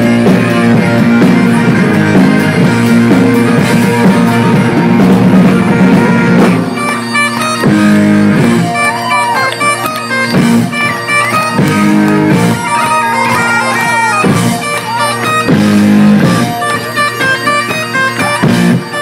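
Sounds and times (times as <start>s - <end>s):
bagpipes playing: 0.0s - 19.0s
electric guitar: 0.0s - 19.0s.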